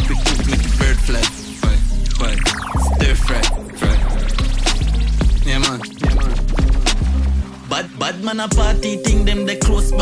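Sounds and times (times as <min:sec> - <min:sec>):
record scratching: 0:00.0 - 0:08.2
dancehall beat with heavy bass: 0:00.0 - 0:10.0.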